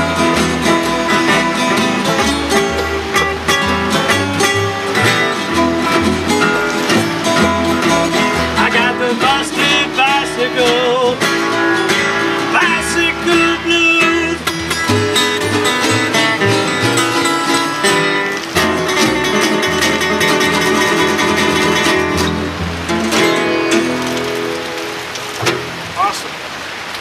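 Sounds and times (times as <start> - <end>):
walking bass line: 0.0 - 26.0
acoustic guitars playing blues: 0.0 - 26.9.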